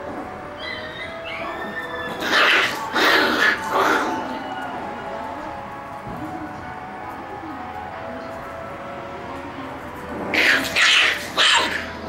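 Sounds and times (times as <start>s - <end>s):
background music with held notes: 0.0s - 12.0s
puppies yelping and growling: 0.6s - 4.7s, 10.4s - 12.0s.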